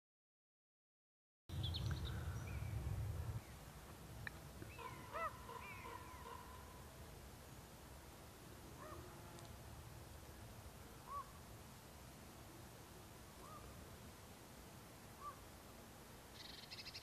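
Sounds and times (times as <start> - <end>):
bird calls: 1.5 - 2.8, 4.6 - 6.8, 11.0 - 11.4, 13.4 - 13.8, 15.2 - 15.5, 16.3 - 17.0
low rumble: 1.5 - 3.6.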